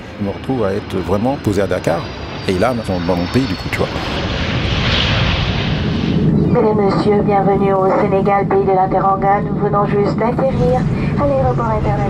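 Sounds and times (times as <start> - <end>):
airliner engines rushing: 0.0 - 12.0.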